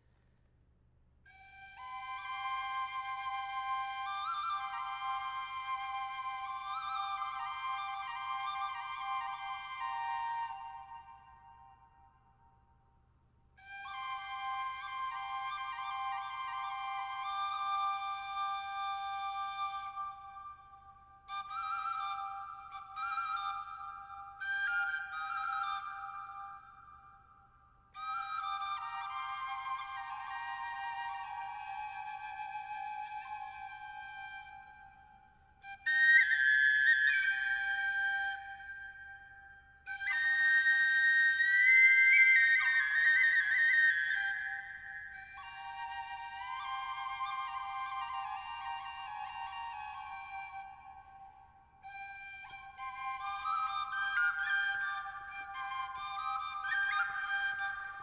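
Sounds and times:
wooden double flute folk tune: 0:01.3 - 0:12.6, 0:13.6 - 0:58.0.

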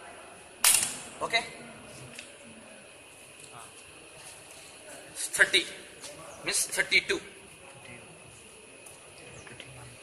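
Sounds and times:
rebound hammer snapping: 0:00.6 - 0:01.1.

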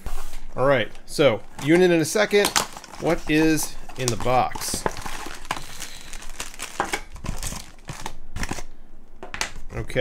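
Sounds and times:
plastic bags crinkling: 0:01.5 - 0:08.7.

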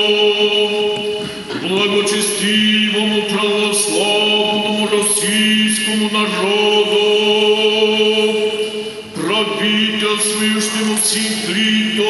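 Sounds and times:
liturgical chant: 0:00.0 - 0:12.0.

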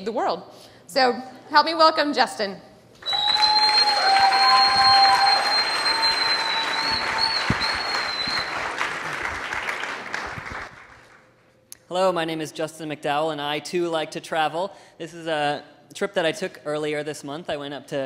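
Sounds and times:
long held whistles: 0:03.0 - 0:09.0
audience applause: 0:03.0 - 0:11.2.

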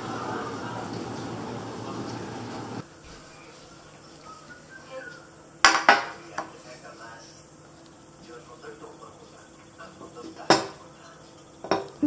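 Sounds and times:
cutlery clinking on a plate: 0:05.6 - 0:06.6, 0:10.2 - 0:12.0.

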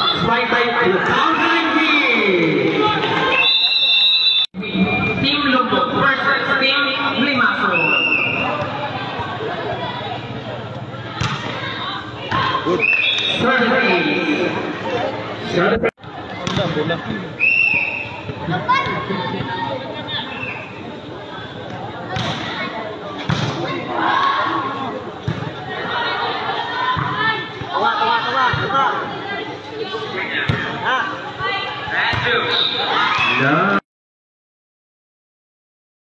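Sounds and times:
spectators talking and calling out: 0:00.0 - 0:33.8
volleyball hit thuds: 0:11.2 - 0:11.6.

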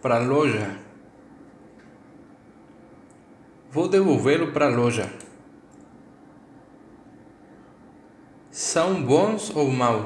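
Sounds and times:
person speaking: 0:00.0 - 0:01.0, 0:03.7 - 0:05.6.

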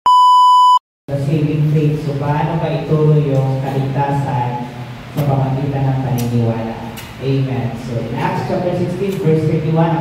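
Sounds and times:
high electronic test tone beep: 0:00.0 - 0:00.8.

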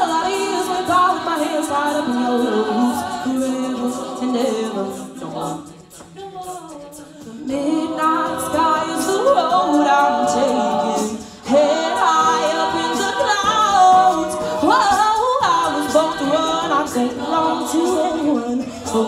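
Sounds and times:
lead vocalist singing: 0:00.0 - 0:19.0
women's group singing in harmony: 0:00.0 - 0:19.0
vocal percussion clicking: 0:00.1 - 0:19.0.

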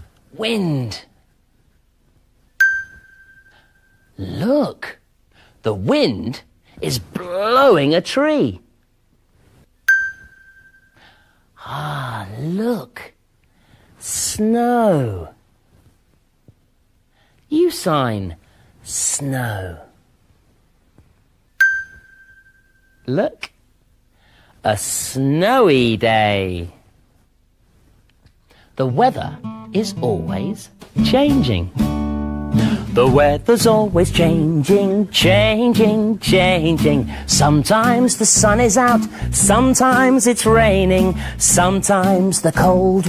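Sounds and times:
high bell-like chime: 0:02.6 - 0:04.1, 0:09.9 - 0:11.0, 0:21.6 - 0:23.0.

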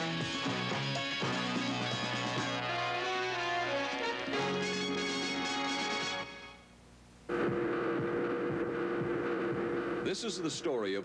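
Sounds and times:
noise haze: 0:06.3 - 0:11.0
electronic drone: 0:07.3 - 0:10.6.

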